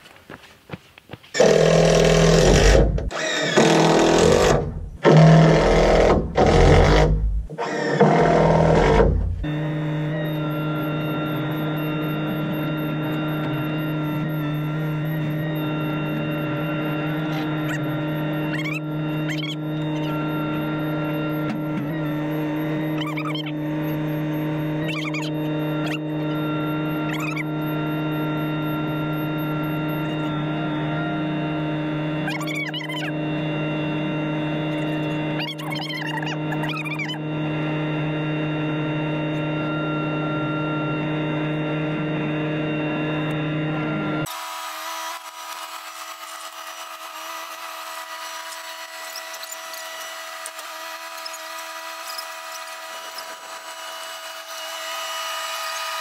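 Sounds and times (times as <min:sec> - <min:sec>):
diesel engine running: 0:01.4 - 0:38.2
thin steady hum: 0:08.4 - 0:44.3
brief squeaks: 0:17.3 - 0:20.6, 0:21.2 - 0:23.7, 0:24.4 - 0:27.5, 0:32.2 - 0:33.1, 0:34.8 - 0:37.2.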